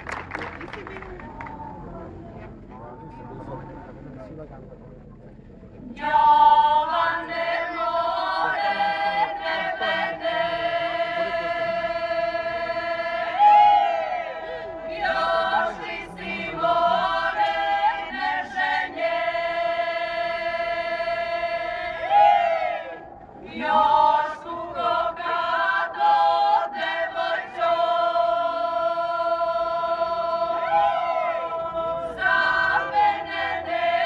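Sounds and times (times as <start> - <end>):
choir singing sustained chords: 5.8 - 34.0.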